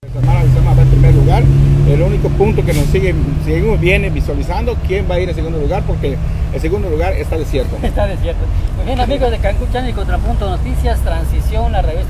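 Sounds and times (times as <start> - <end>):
loud low hum with rumble: 0.0 - 8.8
voices talking: 0.0 - 12.0.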